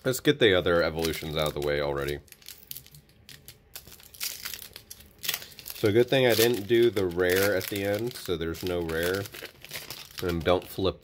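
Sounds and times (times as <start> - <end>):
foil wrapper crinkling and tearing: 0.7 - 10.9.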